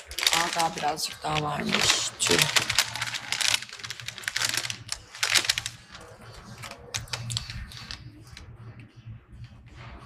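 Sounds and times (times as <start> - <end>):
paper bag rustling: 0.0 - 8.4.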